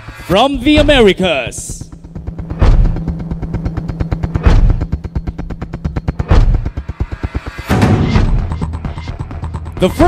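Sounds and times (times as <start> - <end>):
drum roll: 0.0 - 10.0
low held drone: 0.0 - 10.0
heavy booming hits: 2.4 - 3.3, 4.3 - 4.9.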